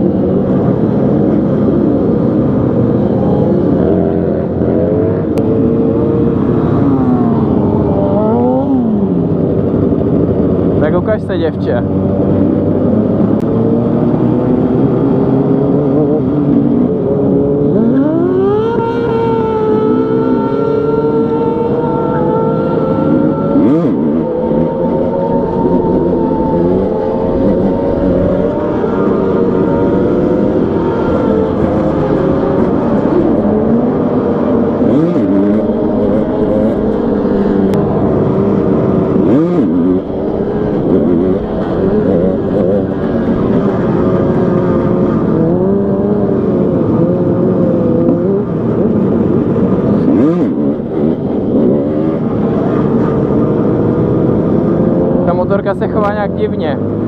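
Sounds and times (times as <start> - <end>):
motorcycle engine revving: 0.0 - 57.0
wind rush on microphone: 0.0 - 57.0.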